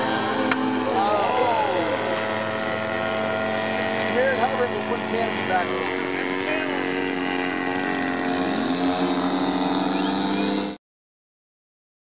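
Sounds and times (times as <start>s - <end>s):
model plane motor and propeller: 0.0s - 10.8s.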